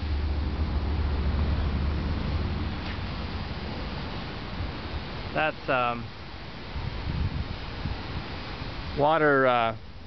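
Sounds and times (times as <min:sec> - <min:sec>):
wind buffeting microphone: 0:06.5 - 0:09.0.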